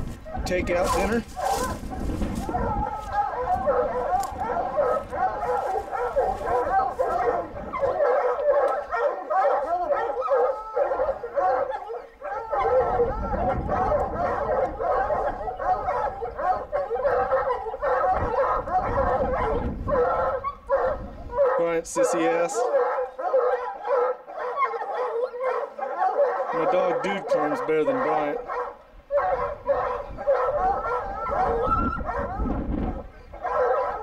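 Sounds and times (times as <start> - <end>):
hounds baying: 0.0 - 34.0.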